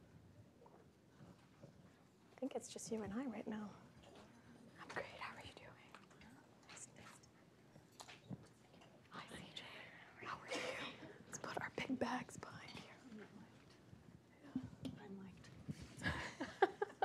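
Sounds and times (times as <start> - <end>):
murmured talk and whispering: 2.4 - 7.7, 9.0 - 16.2.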